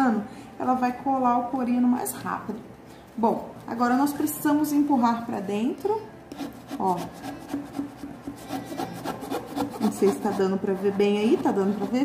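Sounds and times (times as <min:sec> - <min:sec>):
ruler scraping faux leather: 0:06.3 - 0:12.0.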